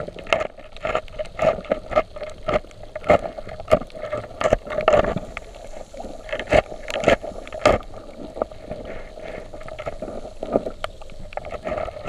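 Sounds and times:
low hum of water movement: 0.0 - 12.0.

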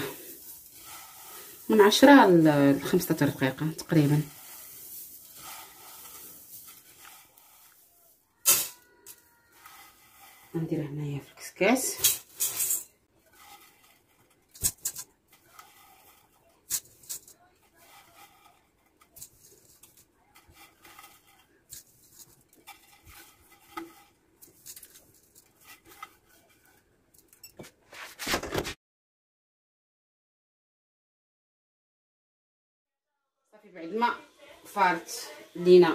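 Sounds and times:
vermicelli rustling: 0.0 - 28.8.

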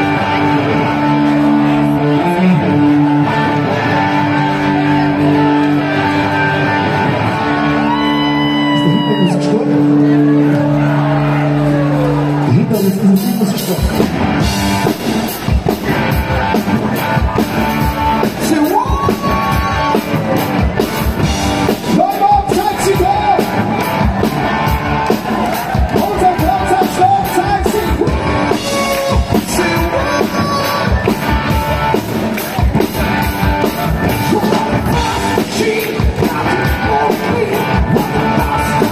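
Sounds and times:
electric guitar: 0.0 - 38.9
live rock band playing: 0.0 - 38.9
drum kit beat: 13.0 - 38.9.

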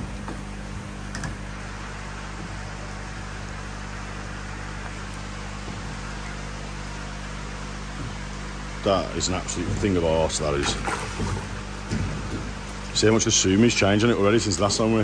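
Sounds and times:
steady low hum: 0.0 - 15.0
water rushing: 8.8 - 15.0.

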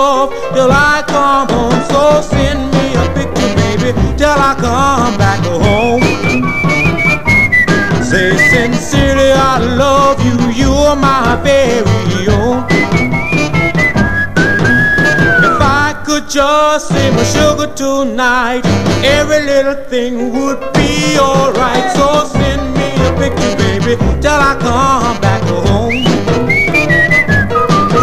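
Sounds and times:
band backing music: 0.0 - 28.0
rhythm and blues song with orchestra: 0.0 - 28.0
whistled melody: 5.5 - 9.5, 12.4 - 16.0, 25.7 - 28.0.

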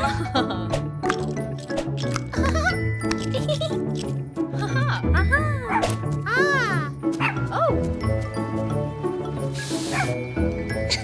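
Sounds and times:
cheerful background music: 0.0 - 11.0.

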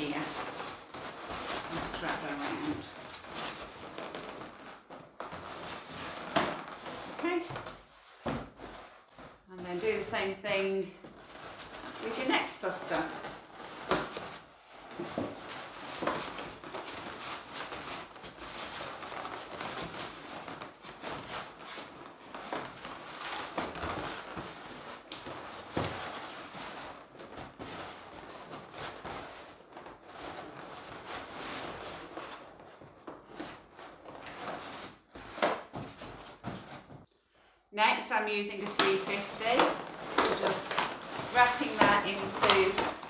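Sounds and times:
balloons rubbing together: 0.0 - 43.0.

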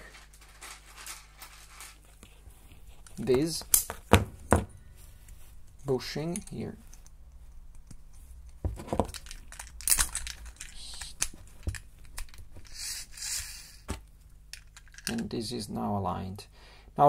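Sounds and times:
plastic parts rubbing scrape: 0.0 - 3.7, 8.8 - 13.9.

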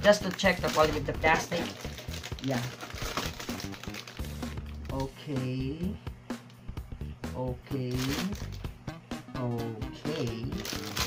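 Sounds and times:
plastic packaging crinkling: 0.0 - 5.0, 7.9 - 8.7, 10.2 - 11.0.

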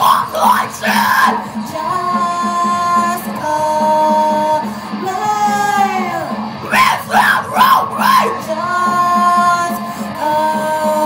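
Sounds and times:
backing music with steady pulse: 0.0 - 11.0.

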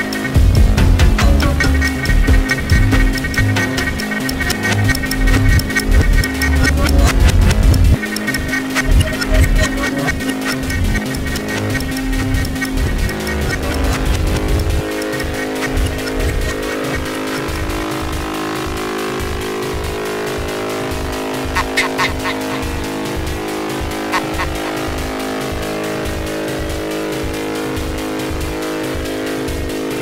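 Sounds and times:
fast ticking hi-hats: 0.0 - 30.0
pulsing bass: 0.0 - 30.0
sustained synth tones: 0.0 - 30.0
short high synth stabs: 0.3 - 27.1.

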